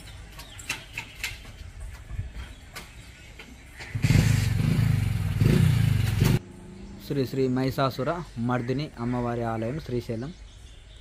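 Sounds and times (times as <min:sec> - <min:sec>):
motor vehicle engine running: 0:03.8 - 0:06.9.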